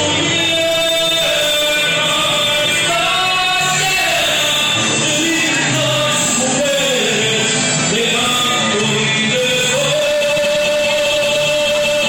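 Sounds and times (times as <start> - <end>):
man singing a long note: 0.0 - 12.0
music: 0.0 - 12.0.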